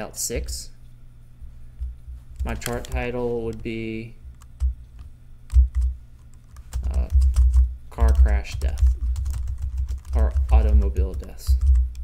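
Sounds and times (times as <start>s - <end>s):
computer keyboard typing: 2.4s - 3.0s, 4.4s - 12.0s.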